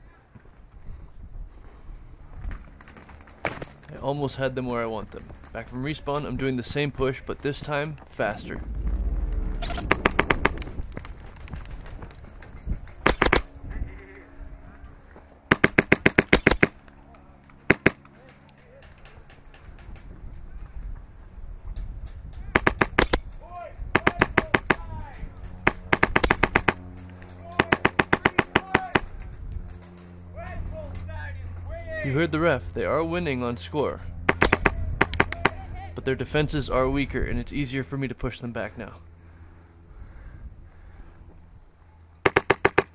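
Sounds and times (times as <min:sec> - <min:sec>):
airsoft rifle firing bursts: 0:09.6 - 0:10.6, 0:13.0 - 0:13.5, 0:15.5 - 0:16.8, 0:17.7 - 0:18.0, 0:22.6 - 0:23.2, 0:24.0 - 0:24.8, 0:25.6 - 0:26.8, 0:27.5 - 0:29.1, 0:42.2 - 0:42.9.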